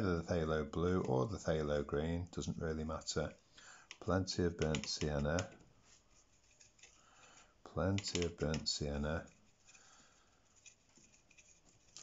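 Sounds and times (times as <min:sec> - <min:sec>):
brush scratching on paper: 0:05.8 - 0:07.4, 0:09.1 - 0:12.0.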